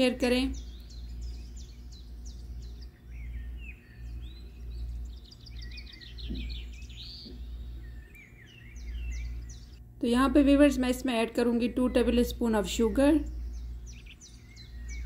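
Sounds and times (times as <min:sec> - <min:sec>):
small birds chirping: 0:00.0 - 0:15.0
steady low hum: 0:00.0 - 0:15.0.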